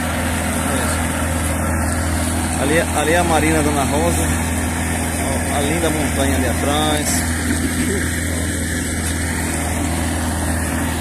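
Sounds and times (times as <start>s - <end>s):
outboard motor humming: 0.0s - 11.0s
water rushing: 0.0s - 11.0s
wind: 0.0s - 11.0s.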